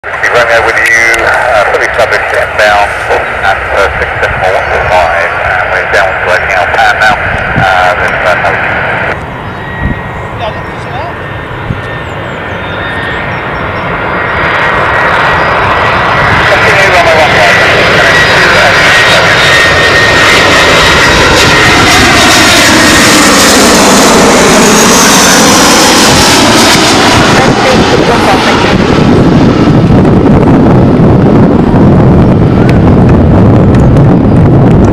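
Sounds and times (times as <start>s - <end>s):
high engine whine: 0.0s - 34.9s
jet airliner passing overhead: 0.0s - 34.9s.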